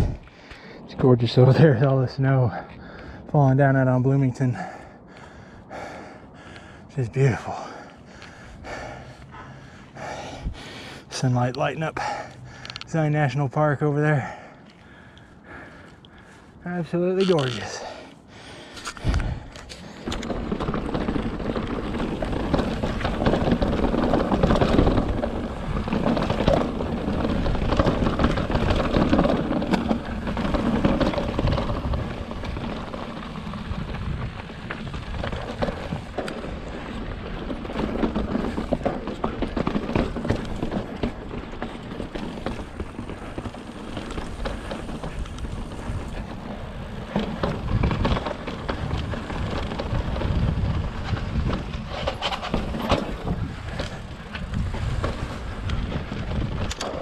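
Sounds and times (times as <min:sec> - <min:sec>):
tyres crunching over gravel: 0:06.9 - 0:57.0
bike rattles and knocks: 0:07.2 - 0:57.0.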